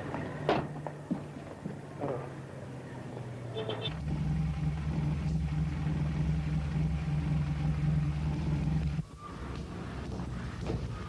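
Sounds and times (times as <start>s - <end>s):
car engine rumbling: 2.3s - 11.0s.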